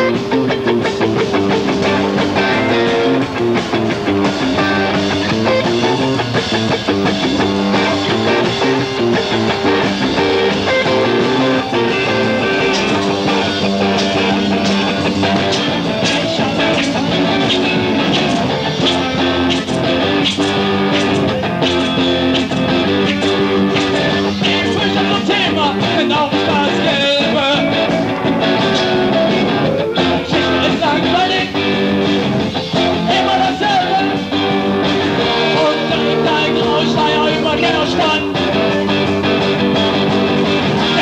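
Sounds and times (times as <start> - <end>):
electric guitar: 0.0 - 41.0
rock band playing live: 0.0 - 41.0
man singing: 15.8 - 18.4, 24.3 - 27.9, 30.0 - 31.8, 32.9 - 34.6, 35.2 - 39.0, 40.8 - 41.0.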